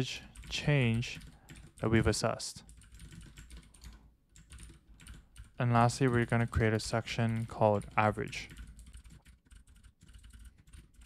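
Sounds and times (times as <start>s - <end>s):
faint keyboard typing: 0.0s - 11.0s.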